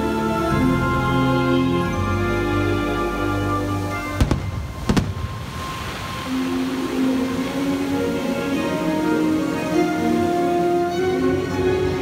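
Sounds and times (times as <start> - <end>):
music with held notes: 0.0 - 5.0, 6.2 - 12.0
firework shells bursting: 4.2 - 5.4.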